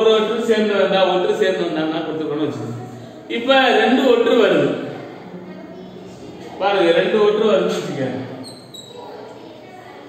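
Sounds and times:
man talking: 0.0s - 4.8s, 6.6s - 8.4s
chalk squeaks: 8.4s - 9.2s.

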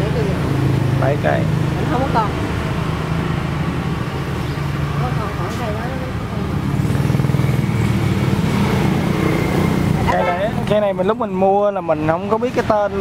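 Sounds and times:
road traffic engine hum: 0.0s - 13.0s.

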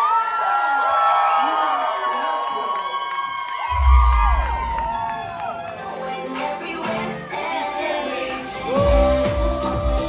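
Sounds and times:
audience cheering and whooping: 0.0s - 6.1s
deep bass boom: 3.7s - 5.5s.

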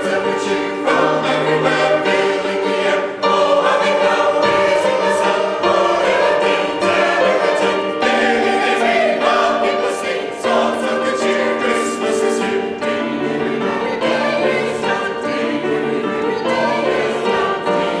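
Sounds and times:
mixed choir singing: 0.0s - 18.0s
piano accompaniment: 0.0s - 18.0s.

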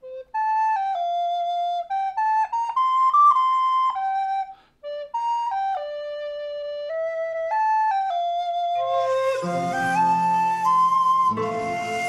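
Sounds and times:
recorder playing hymn melody: 1.5s - 12.0s.

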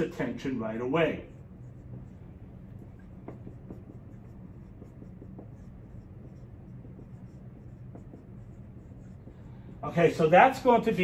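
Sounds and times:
marker scratching on whiteboard: 0.0s - 11.0s
steady low hum: 0.0s - 11.0s.

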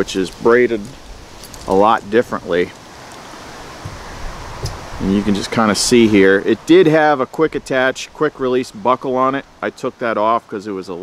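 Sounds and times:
wind hiss: 0.0s - 11.0s.

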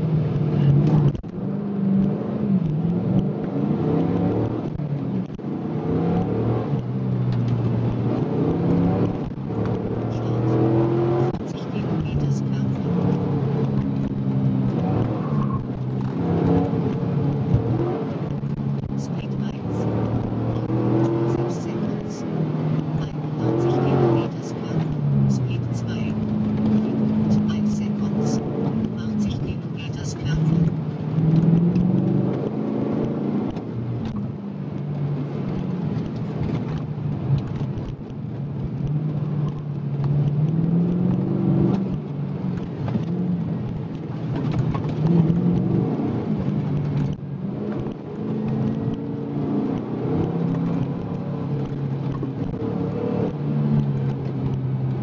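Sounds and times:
car engine revving from inside: 0.0s - 34.2s, 38.6s - 55.0s.

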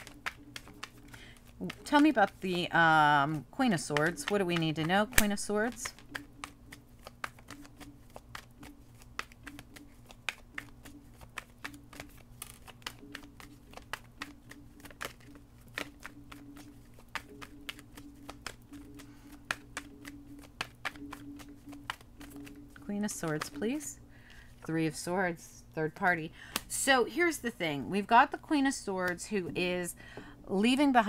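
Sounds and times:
cards being shuffled: 0.0s - 24.7s.

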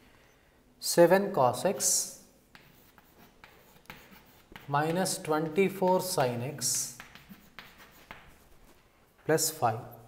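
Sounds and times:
chalk tapping and scraping on blackboard: 1.8s - 9.4s.

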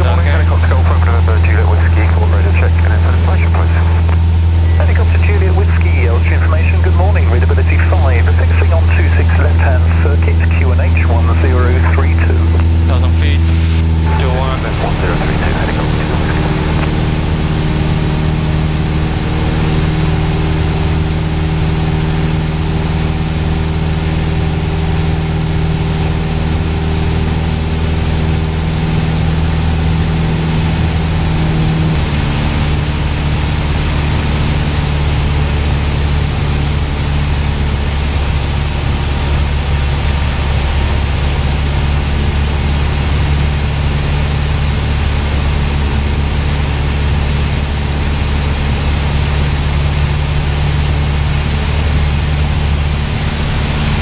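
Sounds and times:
propeller plane engine droning: 0.0s - 54.0s.

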